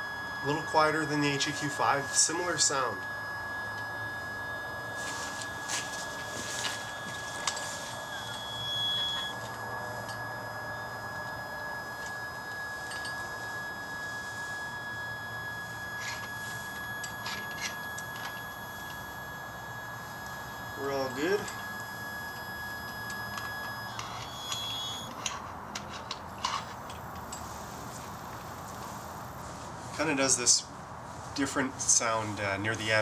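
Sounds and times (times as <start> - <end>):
brief higher tone: 0.0 - 25.2
telescope mount motor hum: 0.0 - 29.8.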